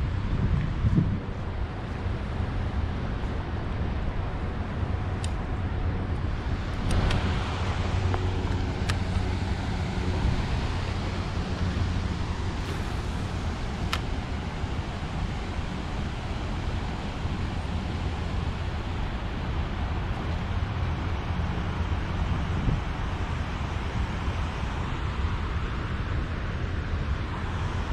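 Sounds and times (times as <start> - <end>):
wind buffeting microphone: 0.0 - 27.9.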